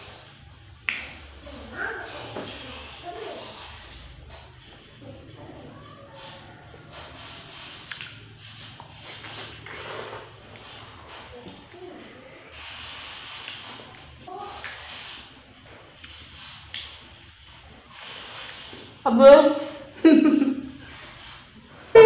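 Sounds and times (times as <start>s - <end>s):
chewing and slurping jelly: 2.1s - 11.8s.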